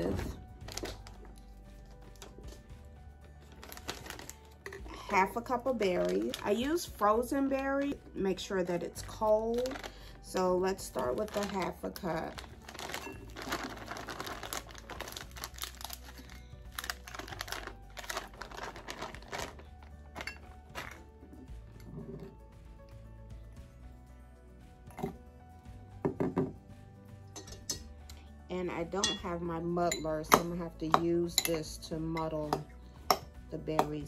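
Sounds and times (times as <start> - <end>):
plastic bag crinkling: 0.0 - 1.4, 3.5 - 6.9, 9.1 - 21.1
frozen berries clattering into glass: 10.8 - 21.0.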